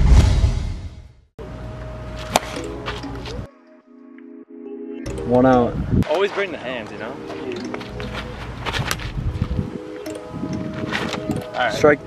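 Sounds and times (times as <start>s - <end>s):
whoosh transition effect: 0.0s - 1.2s
sharp hit: 0.0s - 1.3s
background music: 1.4s - 12.0s.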